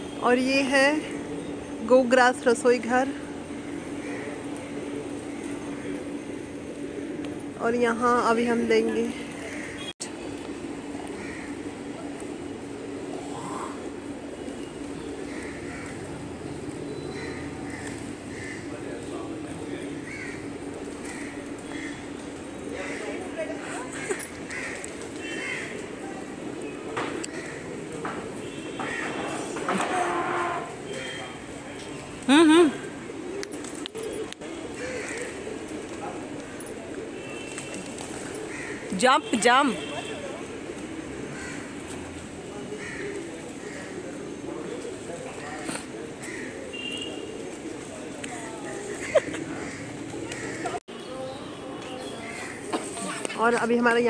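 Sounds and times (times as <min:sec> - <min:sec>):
steady mechanical hum: 0:00.0 - 0:42.5.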